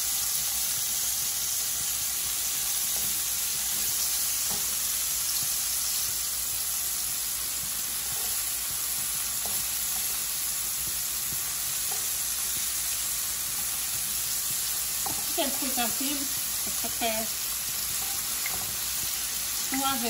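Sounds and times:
seafood sizzling in oil: 0.0s - 20.0s.

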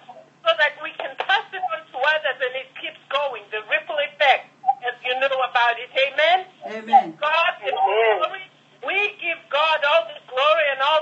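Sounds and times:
person speaking over telephone: 4.7s - 11.0s.

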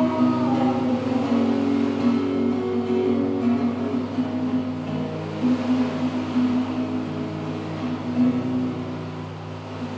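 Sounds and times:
acoustic guitar strumming a chord: 0.0s - 9.9s.

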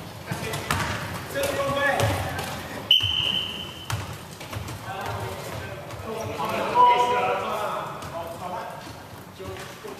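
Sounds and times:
basketball bouncing on wooden court: 0.3s - 6.1s.

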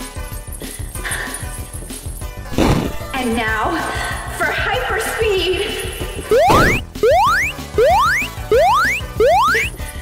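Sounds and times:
soft game music: 6.2s - 10.0s.

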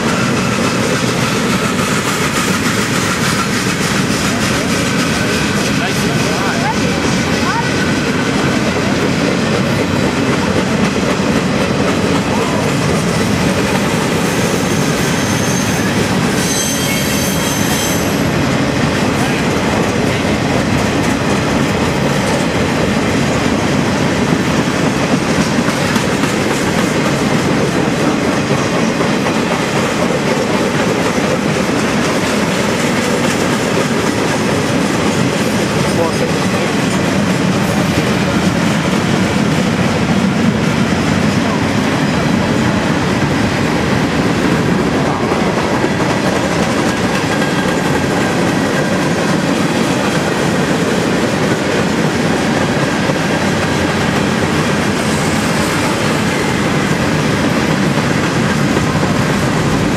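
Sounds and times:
freight cars rumbling on rails: 0.0s - 59.9s
wheels clacking over rail joints: 0.0s - 59.9s
high-pitched wheel squeal: 14.3s - 18.2s.

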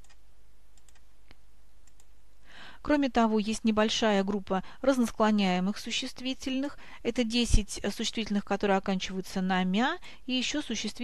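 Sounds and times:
faint steady hiss: 0.0s - 11.0s
faint sharp clicks: 0.8s - 2.1s
person breathing in: 2.4s - 2.8s.

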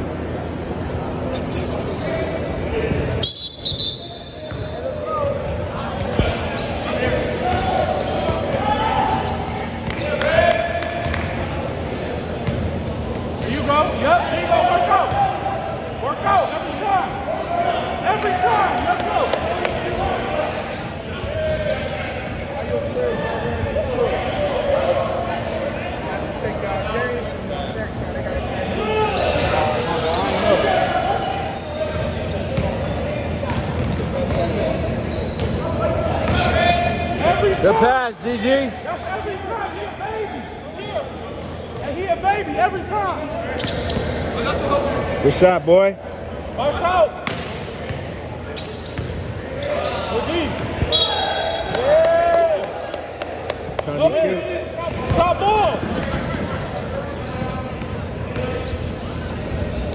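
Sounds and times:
indistinct shouts and chatter: 0.0s - 59.9s
basketball bouncing on court: 4.5s - 4.8s, 12.4s - 12.8s.

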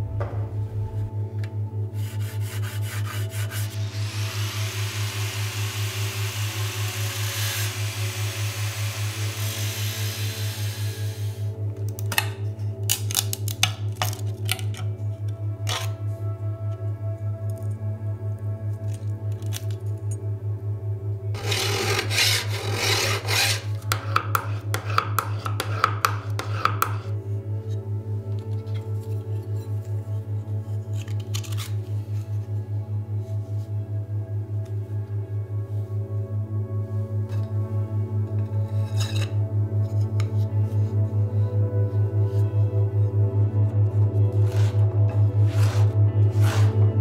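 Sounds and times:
hand saw cutting wood: 2.0s - 11.4s, 21.4s - 27.1s, 44.4s - 47.0s
scraping on wood and metal: 21.4s - 27.2s, 44.4s - 47.0s.

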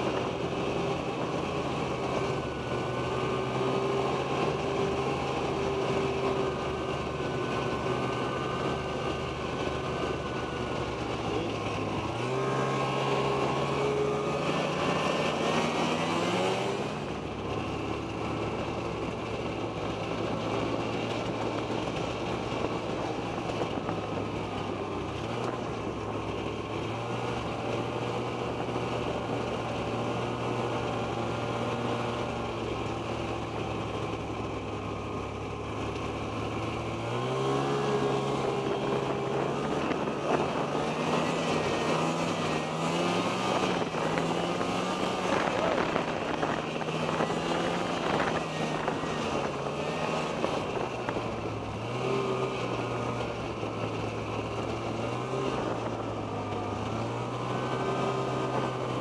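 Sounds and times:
snowmobile engine running: 0.0s - 59.0s.

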